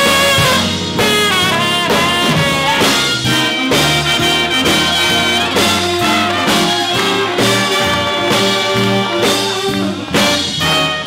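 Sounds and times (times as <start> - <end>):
saxophone and brass backing: 0.0 - 11.0
trombone solo: 0.0 - 11.0.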